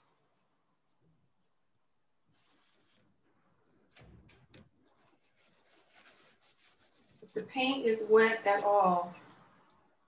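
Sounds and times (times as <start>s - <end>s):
rubber pickup scratching paper: 2.3s - 7.7s.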